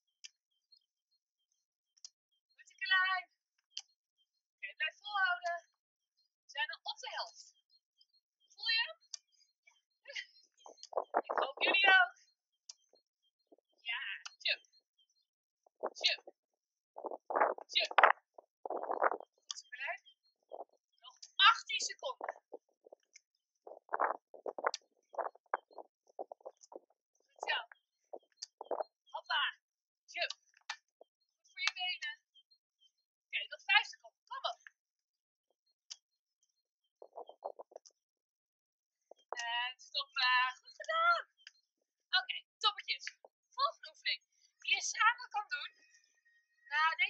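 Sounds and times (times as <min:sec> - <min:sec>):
bursts of voices talking: 0:02.6 - 0:03.4, 0:04.6 - 0:07.6, 0:10.1 - 0:13.0, 0:13.6 - 0:16.4, 0:17.0 - 0:30.6, 0:33.3 - 0:34.7, 0:39.1 - 0:41.5.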